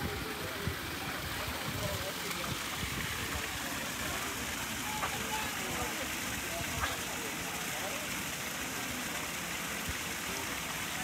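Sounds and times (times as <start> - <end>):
flowing water rushing: 0.0 - 11.0.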